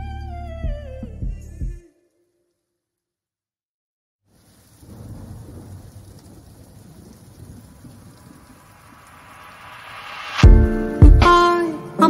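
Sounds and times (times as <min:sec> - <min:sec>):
ambient music intro: 0:09.1 - 0:12.0.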